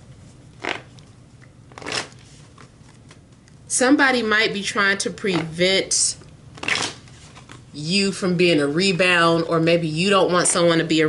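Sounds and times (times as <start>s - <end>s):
cards shuffling: 0.6s - 1.0s, 1.7s - 3.2s, 6.6s - 7.6s.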